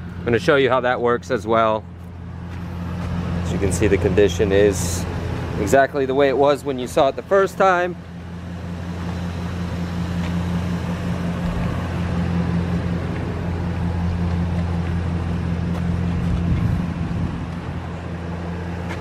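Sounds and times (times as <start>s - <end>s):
outdoor noise: 0.0s - 19.0s
van engine idling: 0.0s - 19.0s.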